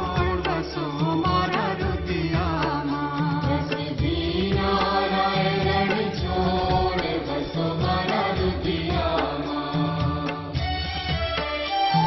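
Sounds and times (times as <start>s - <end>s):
devotional mantra chanting: 0.0s - 10.6s
instrumental accompaniment: 0.0s - 12.0s.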